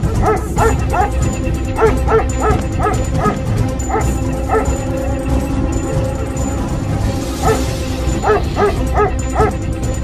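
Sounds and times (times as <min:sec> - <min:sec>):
dog barking: 0:00.0 - 0:01.2, 0:01.8 - 0:04.8, 0:07.4 - 0:09.6
background music with low drone: 0:00.0 - 0:10.0.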